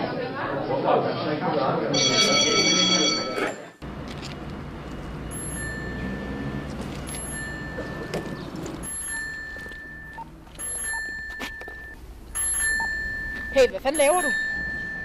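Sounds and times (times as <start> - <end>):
street background hum: 0.0 - 15.0
bicycle bell ringing: 2.0 - 3.6, 5.3 - 15.0.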